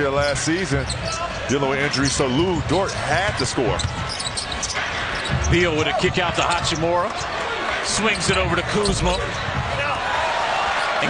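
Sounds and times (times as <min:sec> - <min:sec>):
shoes squeaking on hardwood court: 0:00.0 - 0:07.4, 0:08.2 - 0:09.6
crowd noise: 0:00.0 - 0:11.0
basketball bouncing: 0:03.0 - 0:09.8.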